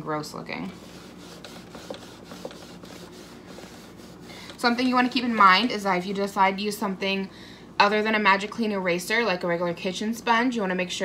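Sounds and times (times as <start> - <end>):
sponge scrubbing a strap: 0.7 - 4.5.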